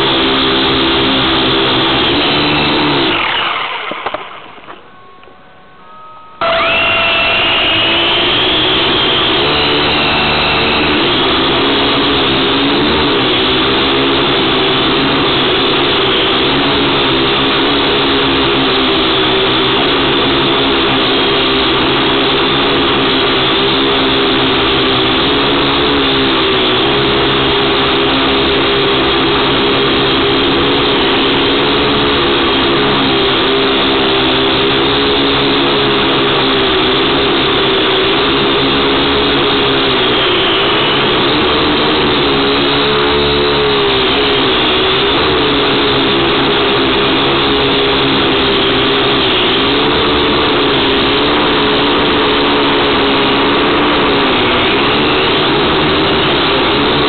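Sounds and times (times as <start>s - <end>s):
drone motors whining: 0.0s - 5.4s, 6.4s - 57.0s.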